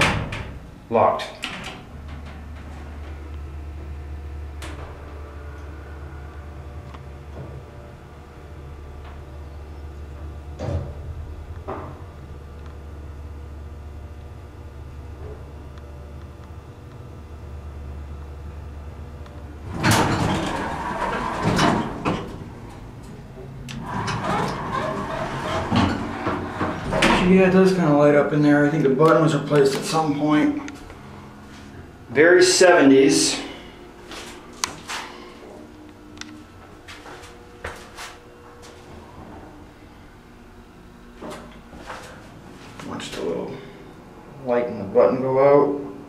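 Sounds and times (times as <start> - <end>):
elevator humming: 0.0 - 46.0
elevator doors sliding open: 1.4 - 3.4, 4.5 - 9.3, 19.6 - 28.0.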